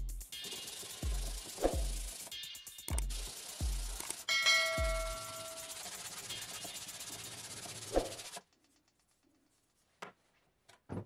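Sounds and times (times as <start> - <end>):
background music with kick drum: 0.0 - 7.1
steady rubbing hiss: 0.0 - 9.0
bright bell-like ding: 4.3 - 5.5.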